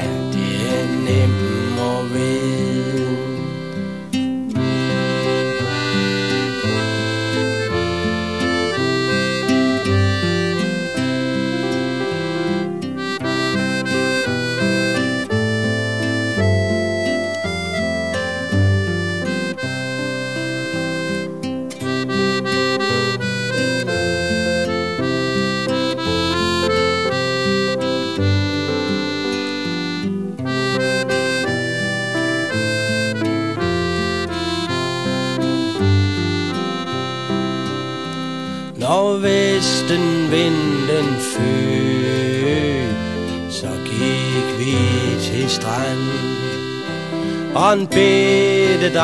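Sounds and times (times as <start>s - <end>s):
folk melody over bass line: 0.0s - 49.0s.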